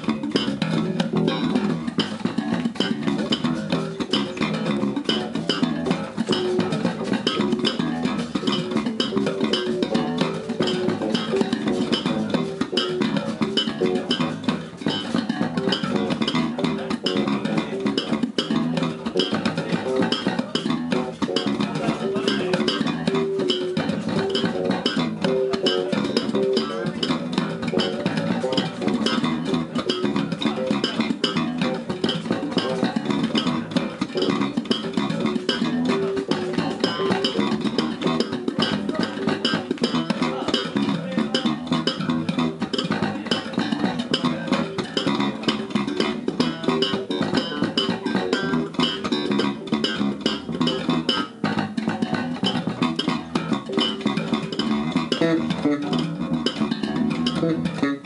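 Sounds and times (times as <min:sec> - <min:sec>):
slapped electric bass guitars: 0:00.0 - 0:58.0.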